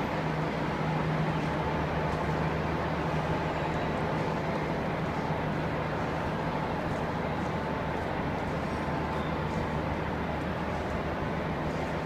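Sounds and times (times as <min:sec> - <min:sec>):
low hum of station hall: 0:00.0 - 0:12.0.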